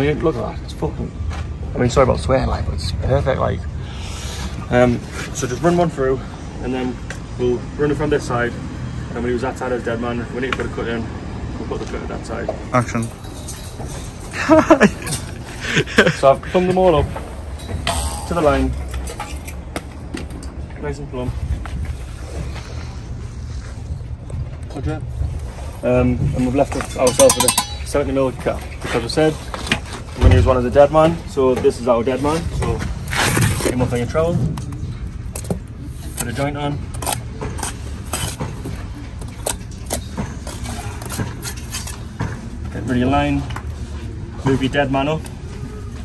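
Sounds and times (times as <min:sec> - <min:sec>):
steady low rumble: 0:00.6 - 0:06.7, 0:30.1 - 0:31.5
trowel scraping and clinking: 0:26.7 - 0:28.8
low rumble: 0:30.2 - 0:31.4.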